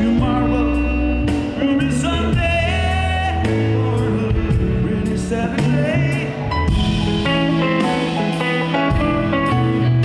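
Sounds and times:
man singing: 0:00.0 - 0:07.6
bass guitar: 0:00.0 - 0:10.0
drums: 0:00.0 - 0:10.0
electric guitar: 0:00.0 - 0:10.0.

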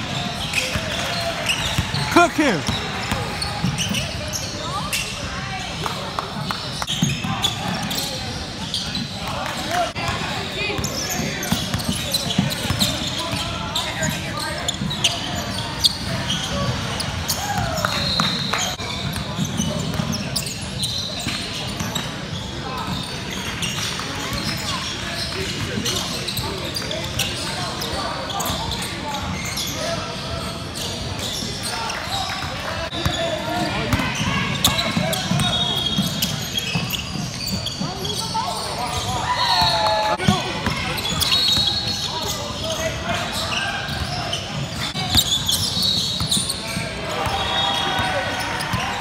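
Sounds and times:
voices of players and spectators: 0:00.0 - 0:49.0.

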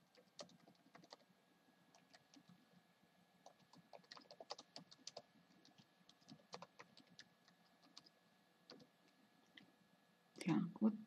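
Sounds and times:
computer keyboard typing: 0:00.0 - 0:01.2, 0:01.9 - 0:02.6, 0:03.4 - 0:08.1, 0:08.7 - 0:08.9.

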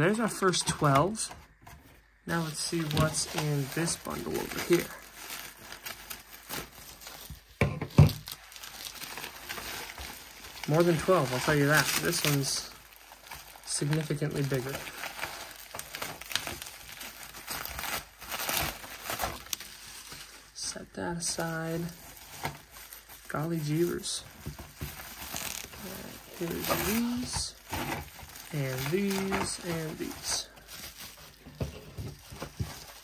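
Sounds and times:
bubble wrap crinkling: 0:00.0 - 0:33.0
soft plastic rustling: 0:00.0 - 0:33.0.

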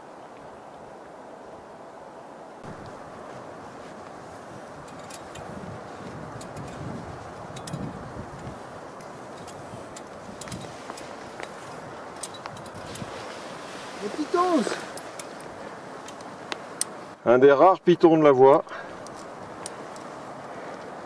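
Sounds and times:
climbing hardware clicks on rock: 0:04.8 - 0:13.2, 0:14.8 - 0:17.0, 0:18.5 - 0:20.1.

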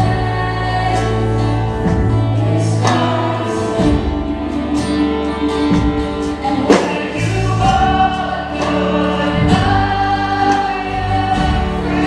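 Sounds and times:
woman singing: 0:00.0 - 0:12.0
worship band playing: 0:00.0 - 0:12.0.

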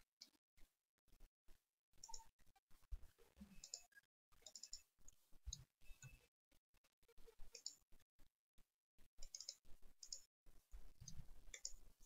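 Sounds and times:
mouse and keyboard clicking: 0:02.0 - 0:02.3, 0:03.6 - 0:04.9, 0:07.5 - 0:07.8, 0:09.2 - 0:10.3, 0:11.0 - 0:11.8.

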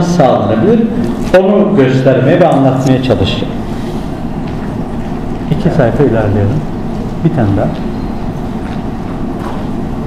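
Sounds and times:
low rumble in a hall: 0:00.0 - 0:10.0.

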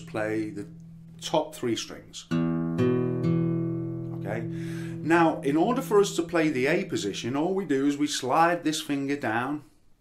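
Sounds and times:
acoustic guitar chord ringing: 0:00.0 - 0:06.9.

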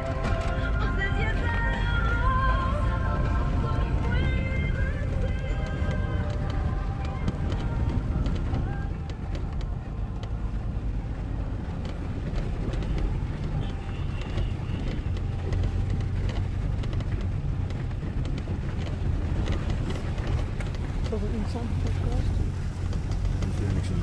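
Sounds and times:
vehicle engine and road rumble: 0:00.0 - 0:24.0
rattles and knocks in cabin: 0:03.2 - 0:24.0.

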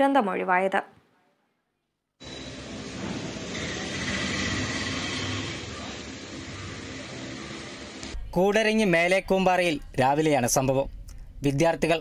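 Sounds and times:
heavy lorry passing: 0:02.2 - 0:08.2.

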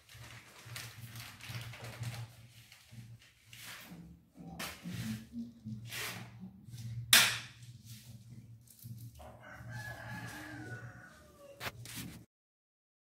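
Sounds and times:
rooster crowing: 0:09.2 - 0:11.8.

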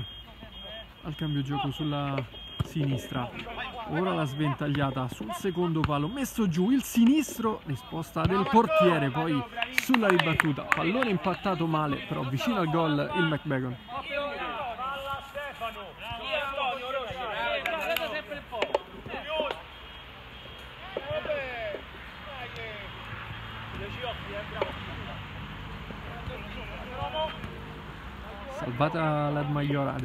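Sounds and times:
men shouting and calling: 0:00.0 - 0:20.1, 0:20.7 - 0:30.0.

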